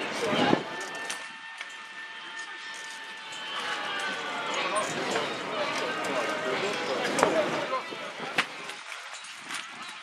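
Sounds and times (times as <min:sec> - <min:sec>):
people talking outdoors: 0:00.0 - 0:10.0.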